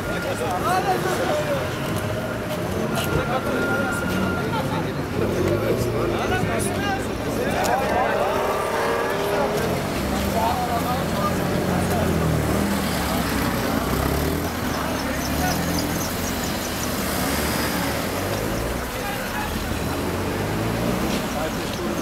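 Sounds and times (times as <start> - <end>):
people talking: 0.0 - 22.0
street noise: 0.0 - 22.0.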